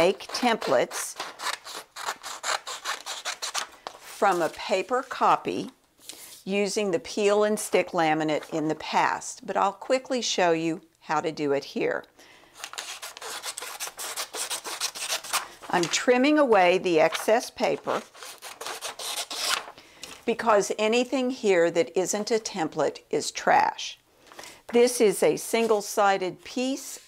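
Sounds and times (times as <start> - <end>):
scissors snipping paper: 0.0 - 3.7, 12.6 - 15.9, 17.8 - 19.7.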